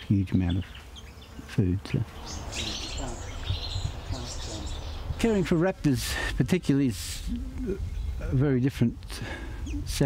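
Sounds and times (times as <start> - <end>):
small bird buzzy calls: 0.0 - 5.6.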